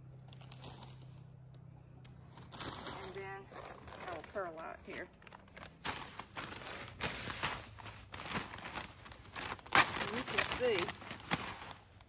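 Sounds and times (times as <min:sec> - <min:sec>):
plastic bag rustling and crinkling: 0:02.2 - 0:12.0.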